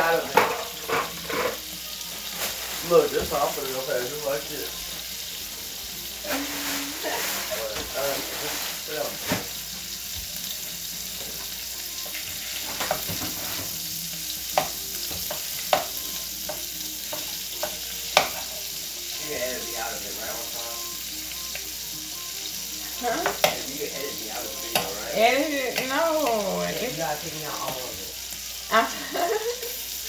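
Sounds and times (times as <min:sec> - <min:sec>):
tortillas sizzling in a skillet: 0:00.0 - 0:30.0.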